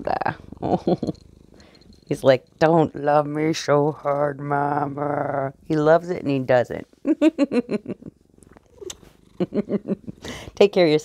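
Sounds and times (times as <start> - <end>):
cat purring: 0.0 - 11.0
woman laughing: 0.6 - 1.2, 7.0 - 8.2, 9.4 - 10.5.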